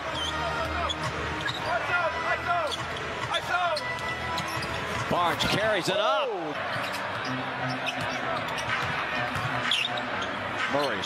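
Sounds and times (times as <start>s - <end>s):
sneakers squeaking: 0.0s - 1.8s, 2.6s - 5.1s, 6.6s - 11.0s
arena crowd noise: 0.0s - 11.0s.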